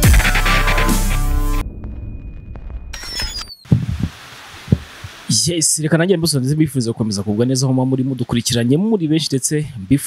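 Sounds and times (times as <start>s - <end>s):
short low thumps: 3.7s - 5.2s
steady hiss: 3.7s - 6.7s.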